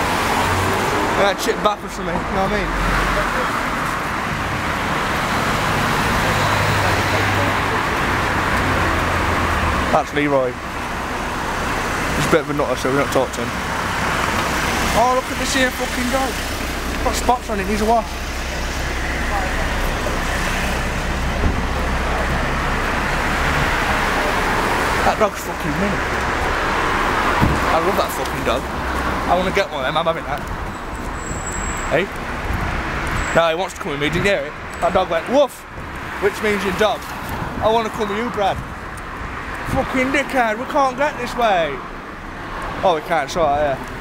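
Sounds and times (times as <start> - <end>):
passing cars: 0.0 - 44.0
road traffic rumble: 0.0 - 44.0.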